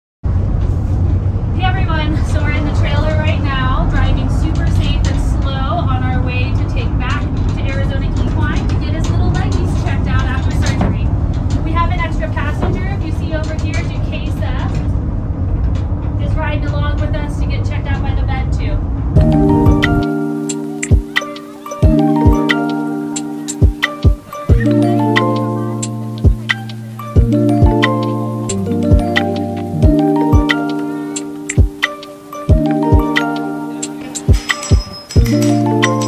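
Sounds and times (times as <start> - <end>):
vehicle rumble: 0.2 - 36.0
indistinct voices talking: 19.2 - 36.0.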